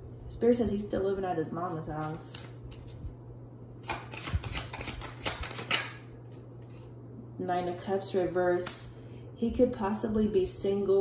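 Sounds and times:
steady low hum: 0.0 - 11.0
cards being shuffled: 1.6 - 3.2, 3.8 - 6.9.

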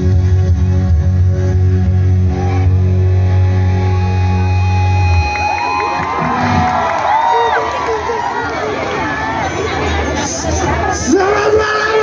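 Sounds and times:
audience cheering: 5.0 - 9.8.

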